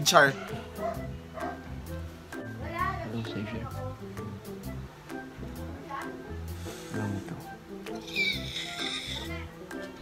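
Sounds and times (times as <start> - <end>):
background music with bass line: 0.0 - 10.0
person squealing with delight: 8.0 - 9.2.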